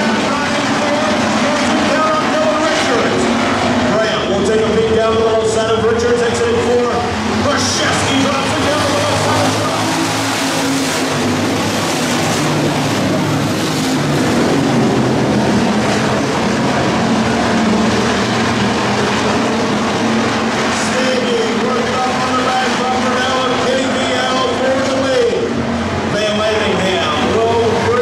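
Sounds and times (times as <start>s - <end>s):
race car engines droning: 0.0s - 28.0s.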